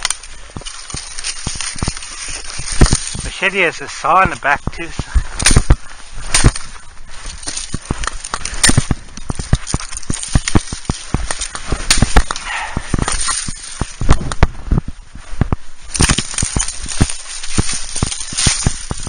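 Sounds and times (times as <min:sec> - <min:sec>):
axe chopping through stems: 0:05.4 - 0:06.7, 0:07.4 - 0:14.5.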